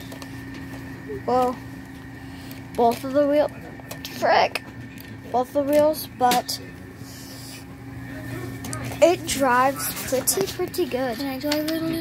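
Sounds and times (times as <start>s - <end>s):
steady low hum: 0.0s - 12.0s
faint clicks and knocks: 10.3s - 12.0s.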